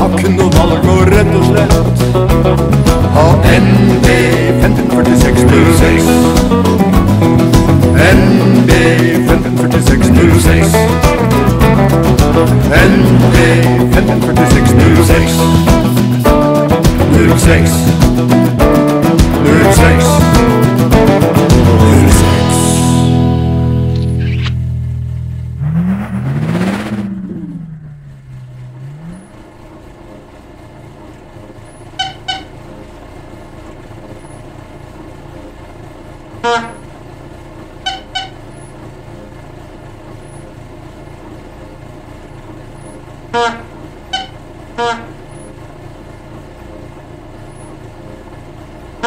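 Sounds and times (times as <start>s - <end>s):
low engine rumble: 0.0s - 49.0s
car horn toots: 31.7s - 32.7s, 36.4s - 37.0s, 37.7s - 38.8s, 43.2s - 45.6s.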